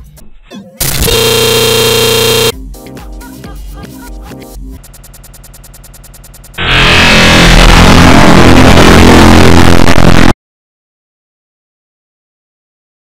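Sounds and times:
fast electronic pattern: 4.8s - 10.2s
loud distorted music blast: 6.6s - 10.4s.

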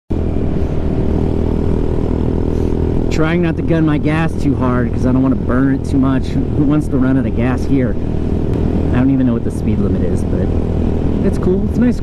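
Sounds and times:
scooter engine running: 0.1s - 12.0s.

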